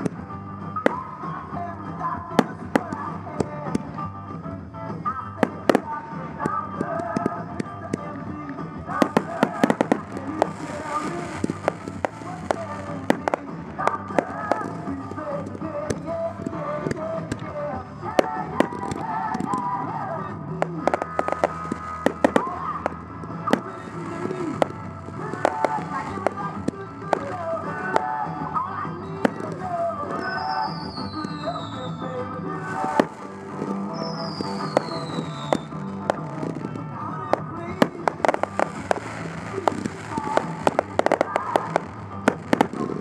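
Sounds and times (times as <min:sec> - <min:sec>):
fireworks bursting: 0:00.0 - 0:43.0
music playing: 0:00.0 - 0:43.0.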